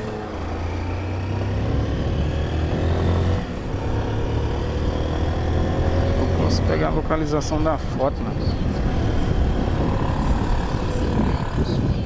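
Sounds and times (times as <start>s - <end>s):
motorcycle engine rumble: 0.0s - 12.0s
wind buffeting microphone: 5.0s - 12.0s.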